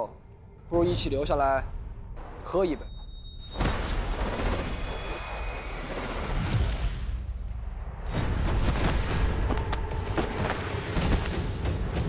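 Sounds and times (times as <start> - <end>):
cinematic music: 0.0 - 12.0
high ringing shimmer: 2.8 - 5.8.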